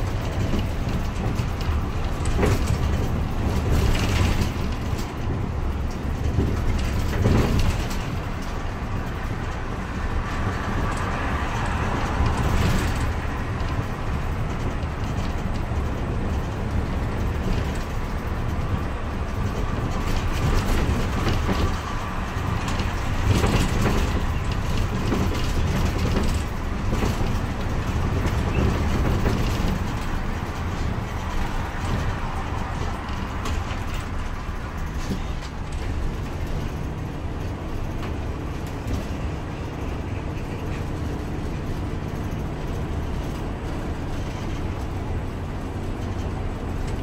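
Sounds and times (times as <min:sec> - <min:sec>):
bus engine and road rumble: 0:00.0 - 0:47.0
knocks from bus cabin: 0:00.0 - 0:47.0.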